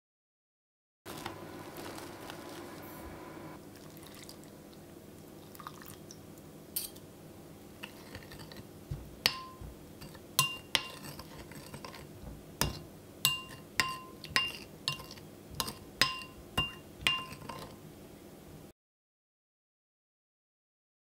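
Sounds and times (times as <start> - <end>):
metal spoon clinking glass bowl: 6.8 - 7.0, 9.2 - 12.0, 12.6 - 17.8.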